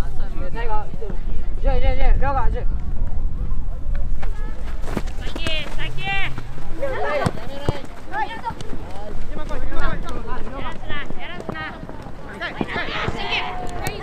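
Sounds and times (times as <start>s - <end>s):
ball being kicked: 4.2s - 14.0s
children shouting: 11.5s - 14.0s.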